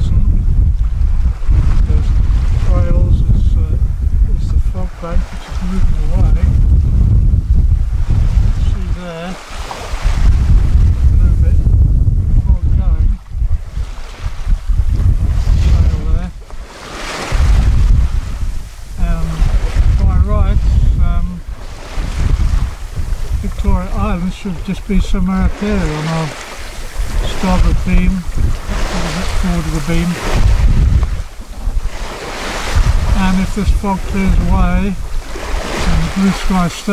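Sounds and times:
choppy sea: 0:00.0 - 0:36.9
wind buffeting microphone: 0:00.0 - 0:36.9.

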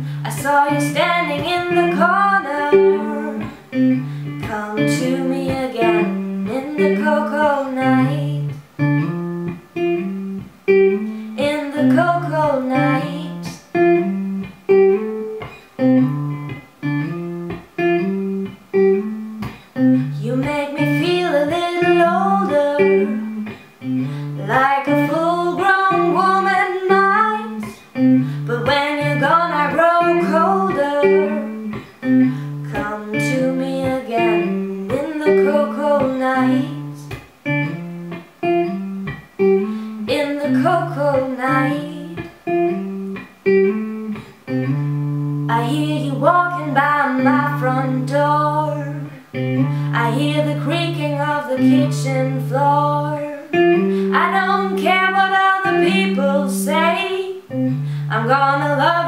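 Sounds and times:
woman singing: 0:00.0 - 0:08.6, 0:11.0 - 0:13.8, 0:19.4 - 0:37.2, 0:39.6 - 0:43.2, 0:45.5 - 0:59.0
acoustic guitar picking: 0:00.0 - 0:58.9.

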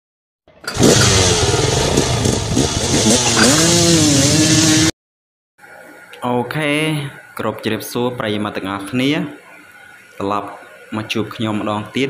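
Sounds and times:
scooter engine revving: 0:00.5 - 0:04.9.

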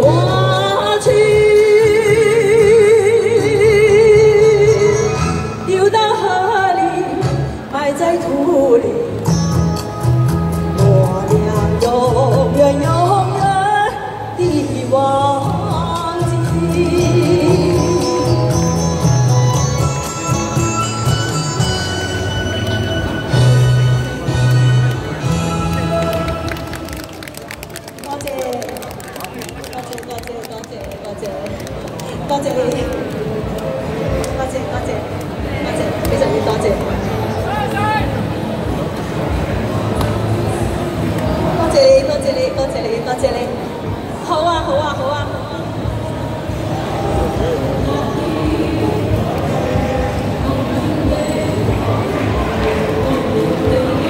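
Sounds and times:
audience clapping: 0:25.6 - 0:33.7.

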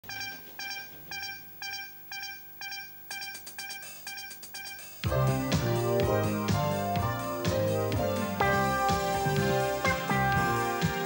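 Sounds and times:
electronic countdown beeps: 0:00.0 - 0:05.8.

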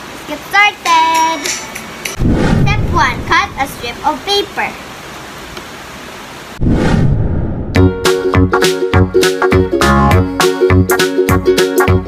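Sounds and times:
steady hissing noise: 0:00.0 - 0:06.6
loud rumbling: 0:02.2 - 0:04.3, 0:06.6 - 0:08.5.

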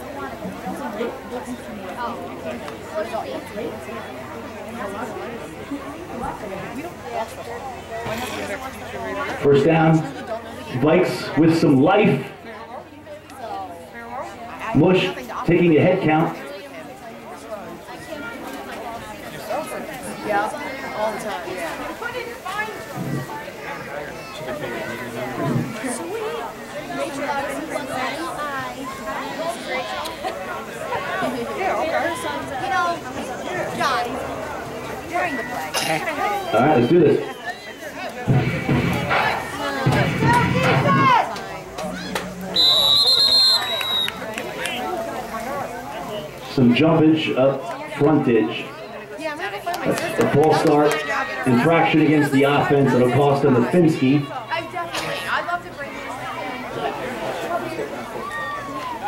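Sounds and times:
overlapping chatter: 0:00.0 - 0:59.0
voices shouting: 0:19.6 - 0:46.7, 0:47.5 - 0:59.0
referee's whistle: 0:42.5 - 0:44.2.

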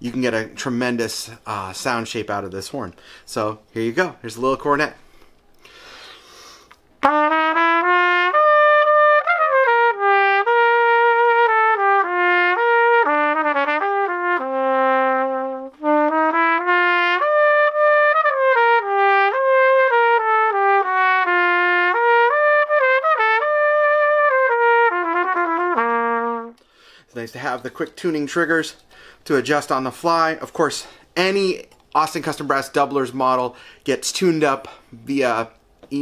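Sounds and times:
player's breath: 0:03.0 - 0:03.3, 0:05.0 - 0:06.8, 0:26.6 - 0:27.1, 0:28.8 - 0:29.2, 0:33.5 - 0:33.8
cornet melody: 0:07.0 - 0:26.6.

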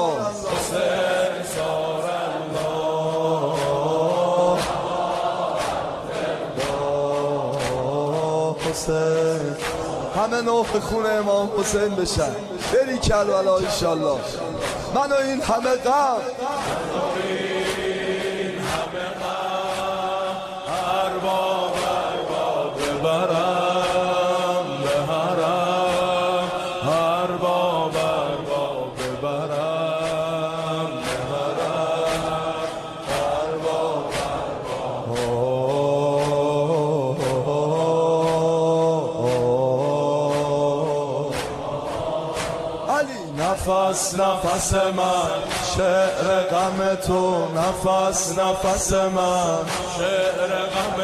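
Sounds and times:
men chanting in unison: 0:00.0 - 0:51.0
sharp percussive strikes: 0:00.0 - 0:51.0.

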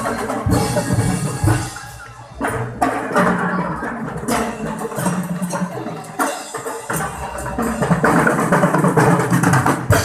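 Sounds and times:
marching band drums: 0:00.0 - 0:10.0.

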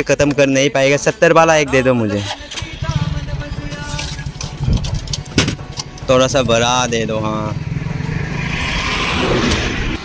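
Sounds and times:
vehicle engine rumbling: 0:02.3 - 0:10.0
sharp knocks and clatters: 0:03.9 - 0:06.3.

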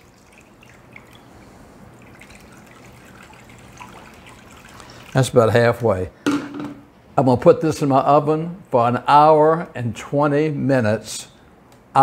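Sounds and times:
water pouring into glass dish: 0:00.0 - 0:05.6.

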